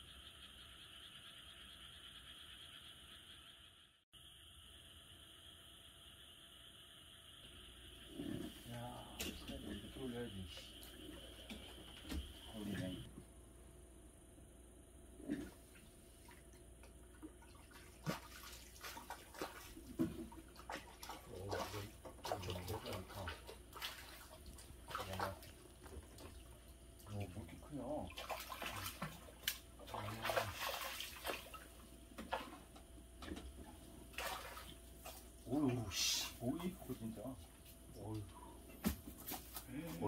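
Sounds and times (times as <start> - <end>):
fish splashing in water: 17.3 - 27.3, 28.0 - 32.7, 34.0 - 35.4.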